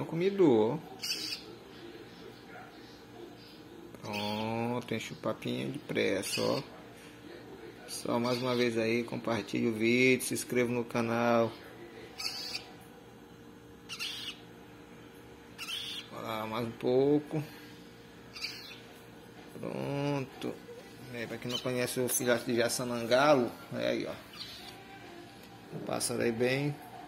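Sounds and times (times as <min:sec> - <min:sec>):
faint steady hum: 0:00.0 - 0:27.0
waterbird chick squawk: 0:13.9 - 0:14.4.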